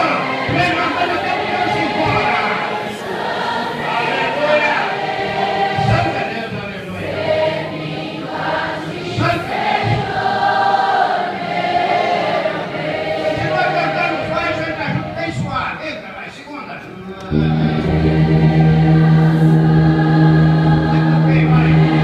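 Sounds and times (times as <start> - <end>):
congregation singing a hymn: 0.0 - 16.2, 17.2 - 22.0.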